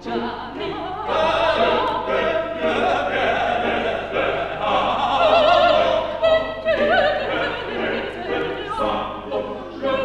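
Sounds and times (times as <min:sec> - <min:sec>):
operatic voices singing: 0:00.0 - 0:10.0.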